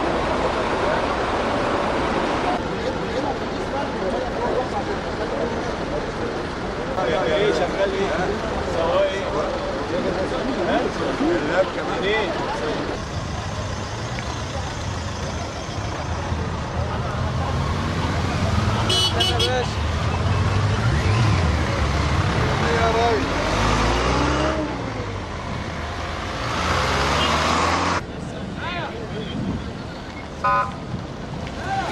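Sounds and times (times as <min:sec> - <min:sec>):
vehicle engines droning: 0:00.0 - 0:31.9.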